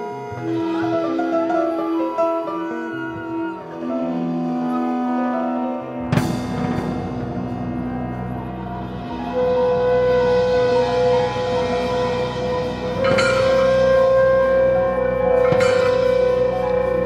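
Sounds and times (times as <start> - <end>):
clarinet sustained notes: 0.0 - 6.4, 7.5 - 17.0
slow layered band: 0.0 - 17.0
struck percussion accents: 11.7 - 17.0.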